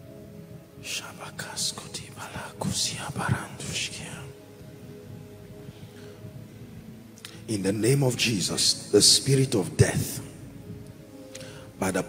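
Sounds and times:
soft background music: 0.0 - 12.0
man whispering: 0.8 - 4.4.

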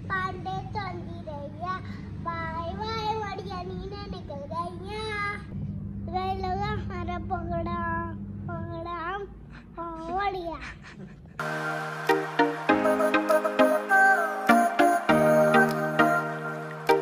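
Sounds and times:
steady low hum: 5.4 - 10.2
child singing held notes: 12.6 - 17.0.

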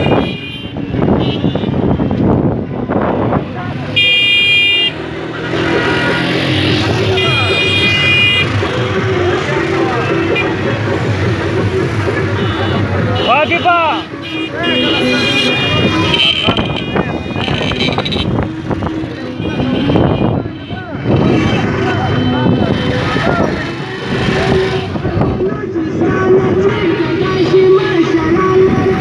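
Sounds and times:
car horns honking: 0.0 - 2.2, 3.7 - 9.2, 9.9 - 11.0, 12.2 - 23.5
car engines running: 0.9 - 29.0
voices: 3.2 - 29.0.

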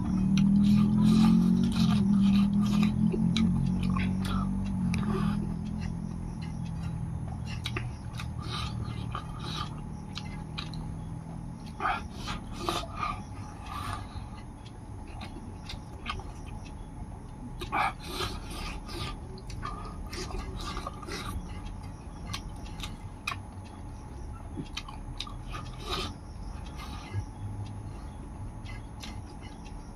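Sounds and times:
chewing and lip smacks: 0.0 - 29.9.

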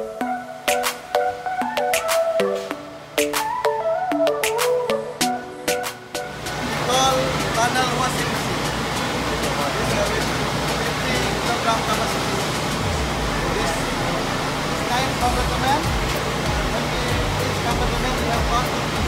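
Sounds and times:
laundry machinery running: 6.3 - 19.0
man talking: 6.6 - 18.8.

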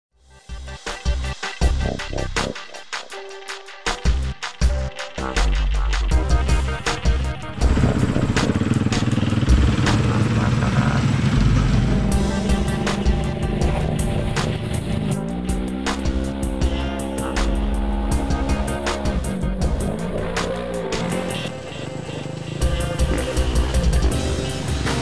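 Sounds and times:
electronic music with steady beat: 0.2 - 25.0
motorcycle engines revving: 6.6 - 25.0.

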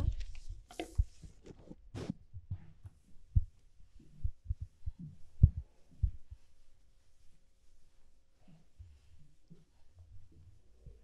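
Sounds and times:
low dull thuds: 2.3 - 6.4.

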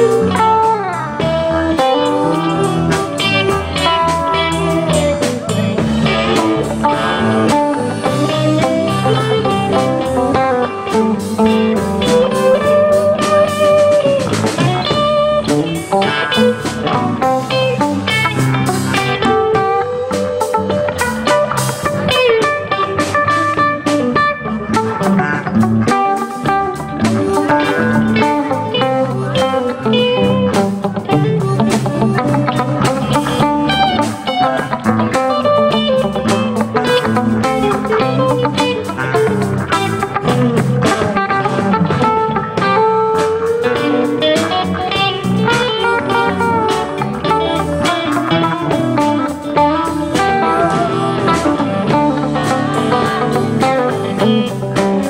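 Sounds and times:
live band playing instrumental: 0.0 - 55.0.

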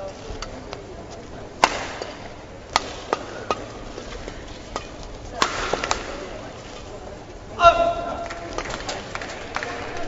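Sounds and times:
racket hitting shuttlecock: 1.6 - 6.4.

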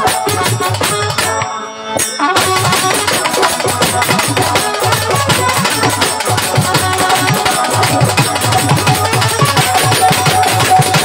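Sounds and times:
hand drums beating: 0.0 - 11.0
live folk band music: 0.0 - 11.0.

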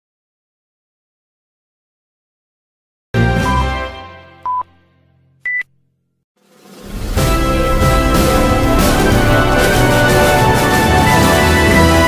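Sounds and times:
short electronic beeps: 5.4 - 5.7
news intro chord: 6.9 - 12.0.

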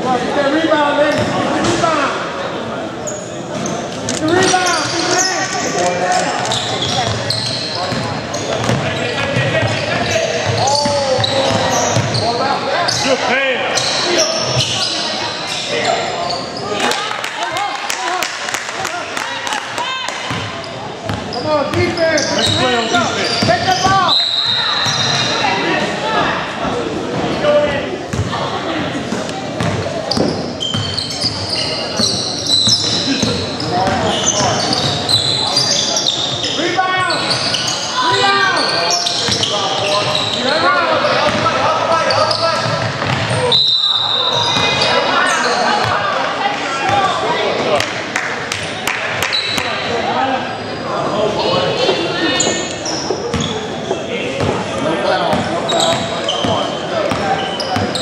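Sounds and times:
basketball bouncing on court: 6.8 - 12.2, 42.2 - 43.4, 55.3 - 58.0
people shouting and calling out: 35.6 - 47.8.

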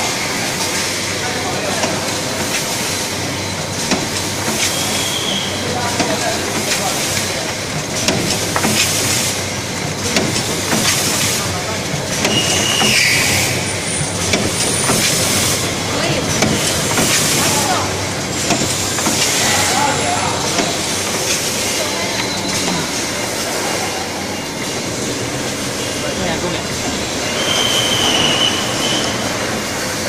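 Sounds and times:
machine clattering: 0.6 - 28.4
sharp mechanical clicks: 6.0 - 22.8
air hissing: 8.3 - 24.3.

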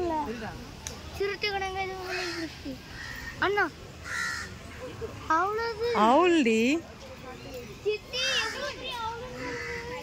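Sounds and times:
crow cawing: 2.0 - 4.6, 8.2 - 10.0.

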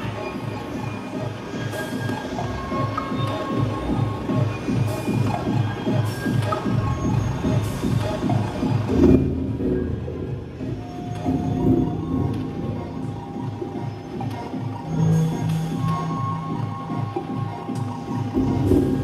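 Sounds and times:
electronic beat music: 0.0 - 19.0.

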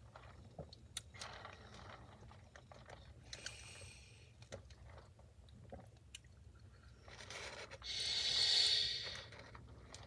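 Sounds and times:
sipping soda through a straw: 6.6 - 10.0.

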